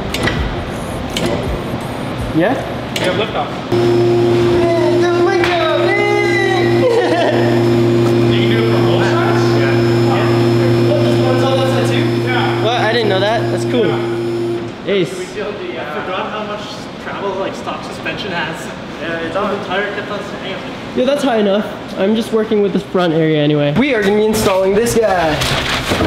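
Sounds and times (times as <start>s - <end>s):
hydraulic pump motor humming: 3.7s - 14.7s.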